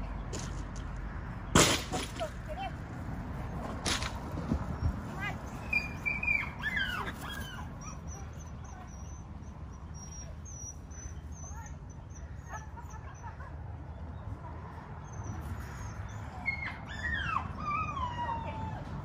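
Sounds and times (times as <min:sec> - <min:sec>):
birds chirping: 0:03.4 - 0:16.5.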